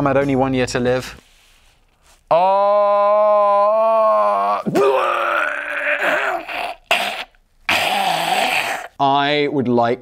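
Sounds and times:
man groaning: 2.3s - 8.9s.

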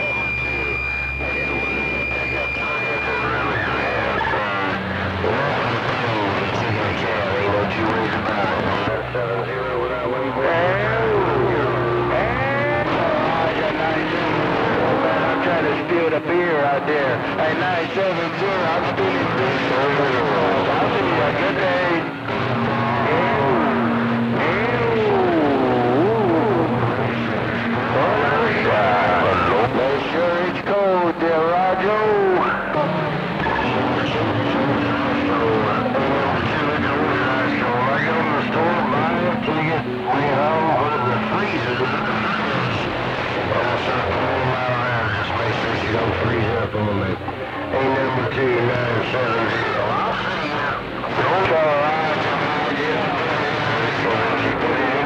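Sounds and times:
music over radio speaker: 0.0s - 55.0s
voices over radio: 0.0s - 55.0s
warbling radio tones: 0.0s - 55.0s.

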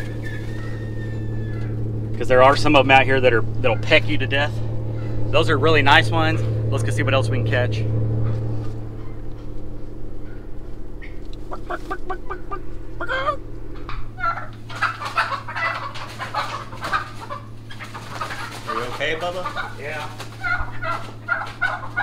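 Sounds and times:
chickens clucking and squawking: 0.0s - 5.6s, 8.2s - 22.0s
steady low hum: 0.0s - 22.0s.

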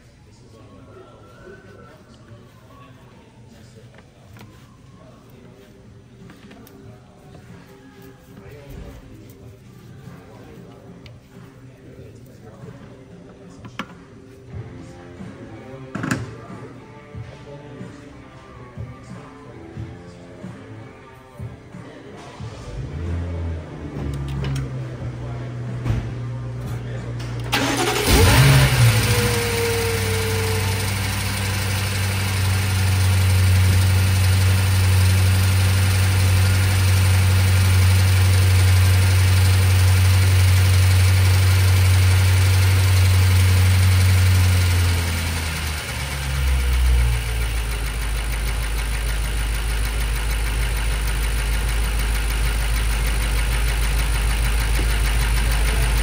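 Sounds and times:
car engine starting and idling: 22.4s - 56.0s.

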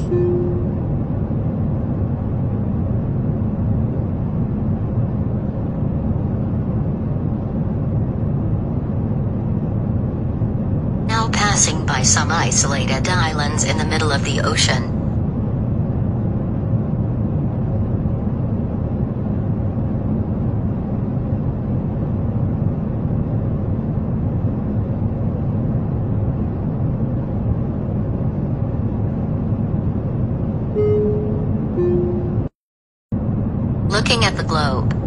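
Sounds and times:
airliner cabin roar: 0.0s - 35.0s.

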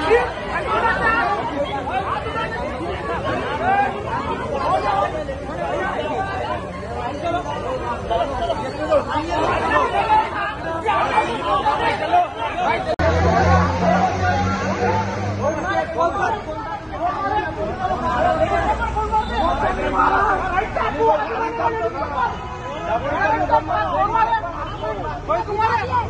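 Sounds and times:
crowd of men talking: 0.0s - 26.0s.

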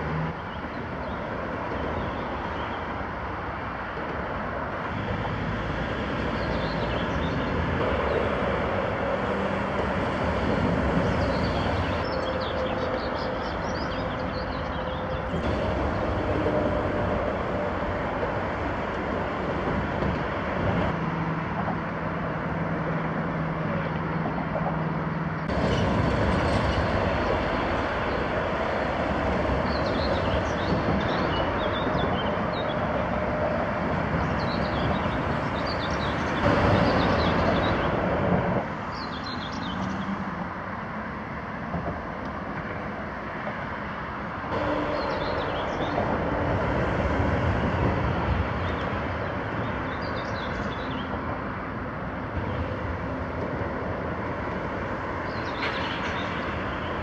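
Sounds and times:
heavy vehicles passing: 0.0s - 57.0s
road traffic rumble: 0.0s - 57.0s.

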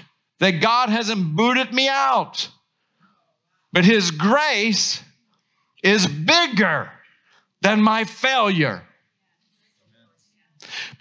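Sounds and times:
man breathing in sharply: 10.6s - 11.0s.

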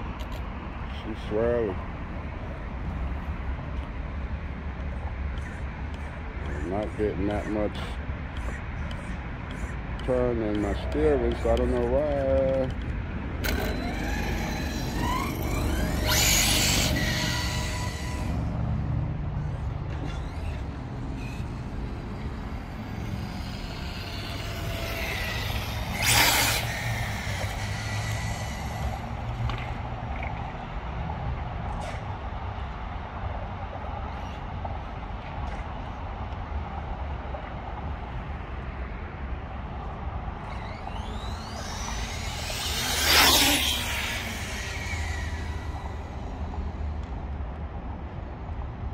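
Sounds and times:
radio-controlled car whizzing past: 13.4s - 18.4s, 19.4s - 30.4s, 40.4s - 47.0s.

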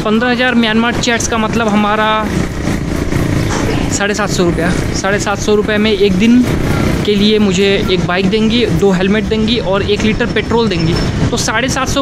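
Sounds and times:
vehicle engine and road noise: 0.0s - 12.0s.

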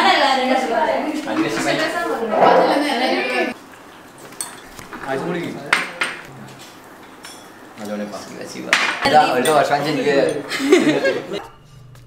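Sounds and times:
cutlery clinking on plates: 4.2s - 7.6s, 8.7s - 10.8s.

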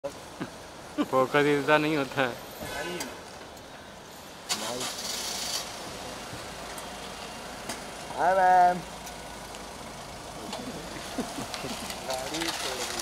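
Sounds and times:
car engine starting and idling: 4.4s - 13.0s.

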